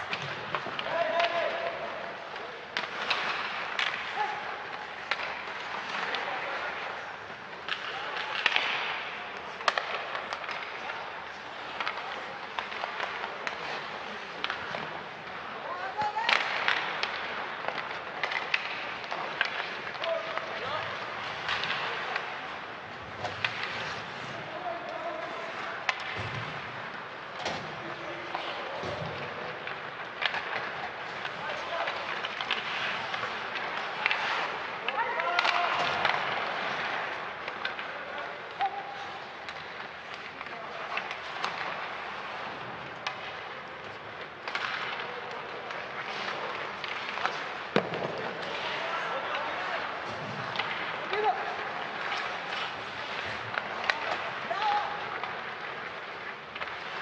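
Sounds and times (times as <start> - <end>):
skates scraping ice: 0.0 - 57.0
sticks and puck knocking: 42.9 - 48.8.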